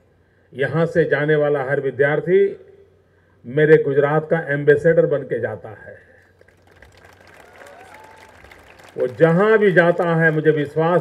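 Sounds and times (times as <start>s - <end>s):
audience applauding: 6.4s - 11.0s.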